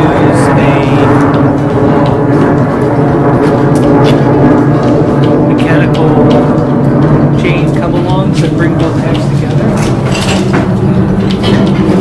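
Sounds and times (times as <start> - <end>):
man talking: 0.0 - 1.2, 5.5 - 6.5, 7.4 - 9.9
steady low hum: 0.0 - 12.0.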